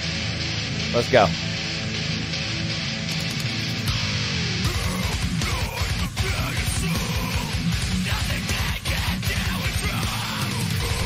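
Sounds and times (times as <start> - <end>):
heavy distorted electric guitars: 0.0 - 11.0.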